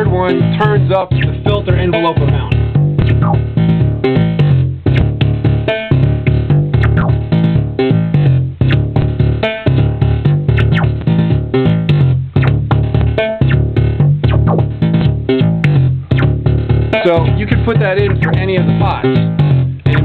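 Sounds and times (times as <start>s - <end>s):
synthesizer bass line: 0.0s - 20.0s.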